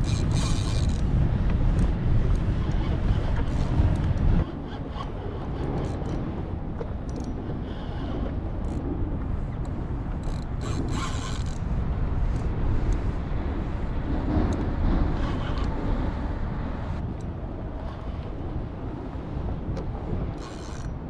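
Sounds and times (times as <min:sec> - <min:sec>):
fishing reel clicking and whirring: 0:00.0 - 0:01.1, 0:01.8 - 0:06.2, 0:07.1 - 0:08.8, 0:09.6 - 0:11.7, 0:20.4 - 0:21.0
wind buffeting microphone: 0:00.0 - 0:21.0.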